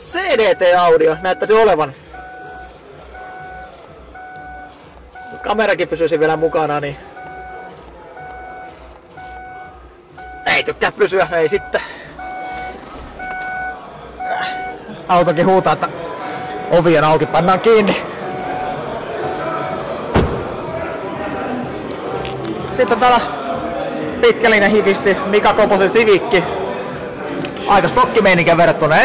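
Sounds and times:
car door warning chime beeping: 0:00.0 - 0:20.6
murmur of voices: 0:00.0 - 0:29.0
car door slamming: 0:20.1 - 0:20.7.

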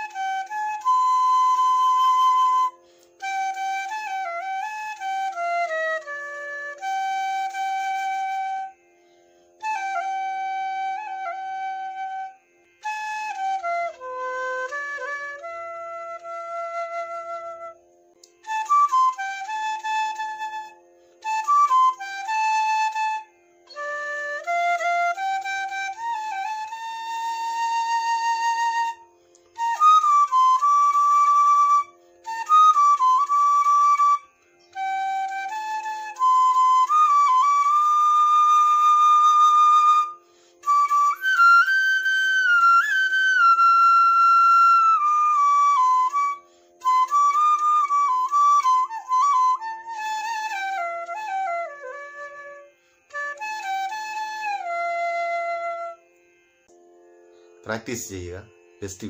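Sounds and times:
bamboo flute melody: 0:00.0 - 0:56.4, 0:57.3 - 0:59.0.

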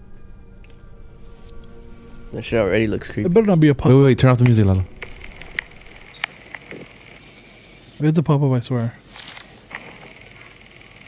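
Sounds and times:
faint hiss: 0:04.8 - 0:11.0.

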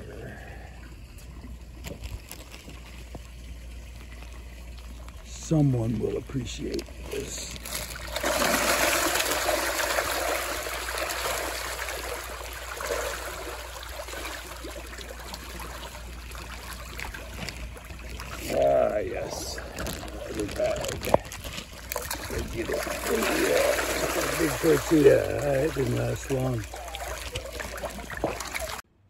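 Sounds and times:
water lapping and trickling: 0:00.0 - 0:28.9
fish splashing at water surface: 0:06.3 - 0:28.8.

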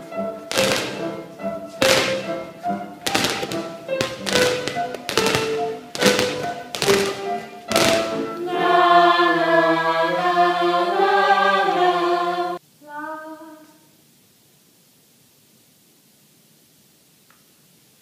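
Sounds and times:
piano playing: 0:00.0 - 0:08.8
balls bouncing on wooden floor: 0:00.5 - 0:01.2, 0:01.8 - 0:02.4, 0:03.0 - 0:08.3
group of voices singing: 0:07.7 - 0:12.6.

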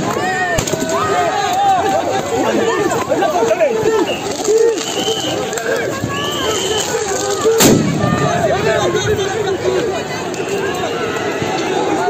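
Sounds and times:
loud bang: 0:07.6 - 0:09.3.

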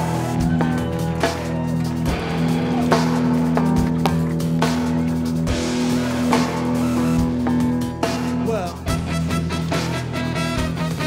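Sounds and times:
drums on steady beat: 0:00.0 - 0:11.0.

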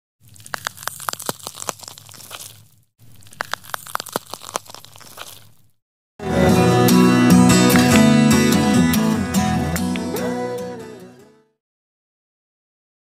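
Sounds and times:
crackling clicks and crunches: 0:00.2 - 0:05.8.

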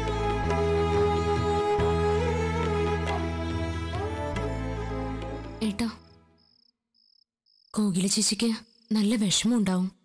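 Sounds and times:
background music: 0:00.0 - 0:06.4
crickets chirping: 0:05.9 - 0:09.4.

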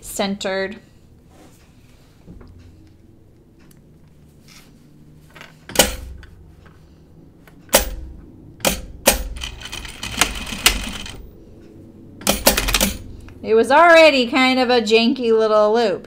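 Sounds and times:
sharp clicks and knocks: 0:05.3 - 0:06.8, 0:07.4 - 0:11.2, 0:12.2 - 0:13.1.

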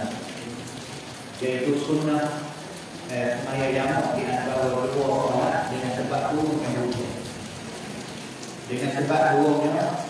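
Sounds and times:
man speaking into a microphone: 0:01.4 - 0:07.3, 0:08.7 - 0:10.0.

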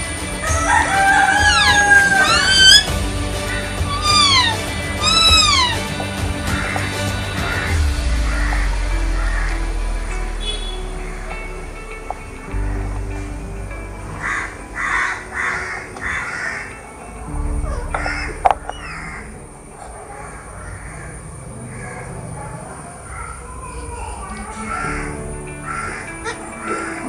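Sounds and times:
drawn-out animal calls: 0:00.4 - 0:07.8, 0:14.1 - 0:27.0
low hum: 0:01.4 - 0:15.3, 0:17.3 - 0:26.6
short harsh animal calls: 0:01.5 - 0:02.9, 0:03.9 - 0:05.9.

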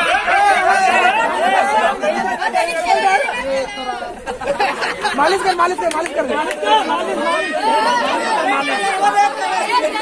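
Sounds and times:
young men chattering: 0:00.0 - 0:10.0.

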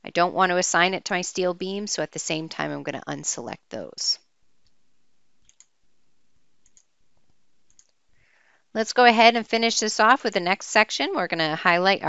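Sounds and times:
computer mouse clicks: 0:05.4 - 0:05.7, 0:06.6 - 0:06.9, 0:07.7 - 0:08.0.

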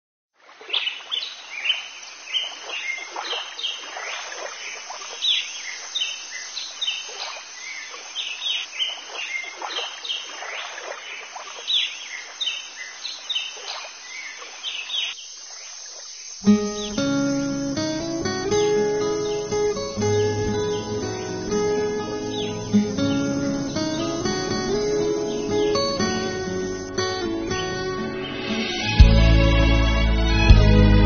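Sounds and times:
outdoor ambience hiss: 0:00.4 - 0:31.0
birds chirping: 0:00.7 - 0:30.5.

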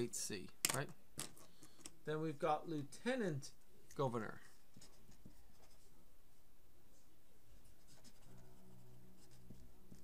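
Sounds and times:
faint low hum: 0:00.0 - 0:10.0
marker scratching on paper: 0:07.6 - 0:10.0.

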